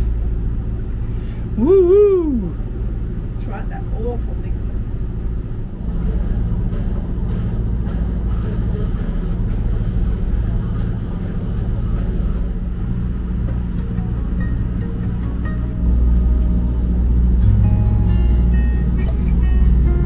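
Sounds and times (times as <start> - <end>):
low motor hum: 0.0 - 20.0.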